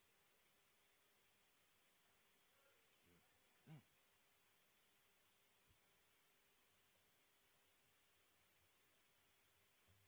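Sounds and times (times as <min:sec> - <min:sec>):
faint steady hiss: 0:00.0 - 0:10.0.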